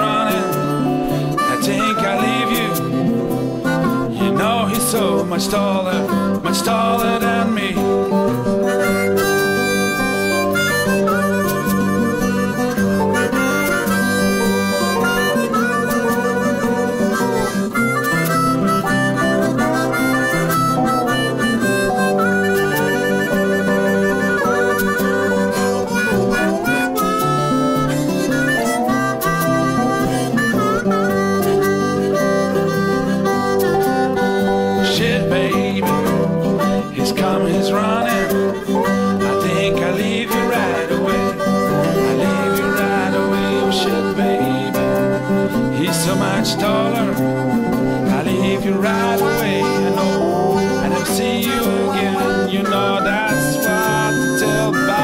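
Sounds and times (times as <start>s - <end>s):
acoustic guitar accompaniment: 0.0s - 55.0s
blues harmonica solo: 0.0s - 55.0s.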